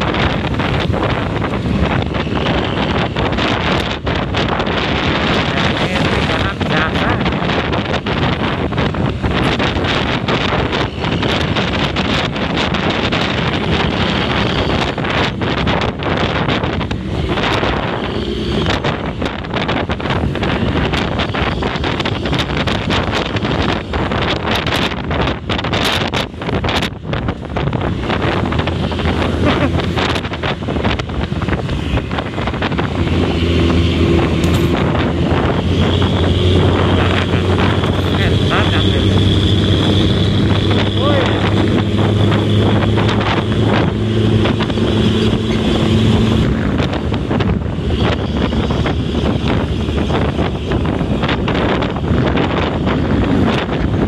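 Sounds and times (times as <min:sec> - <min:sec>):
bus diesel engine drone: 0:00.0 - 0:54.0
wind buffeting microphone: 0:00.0 - 0:54.0.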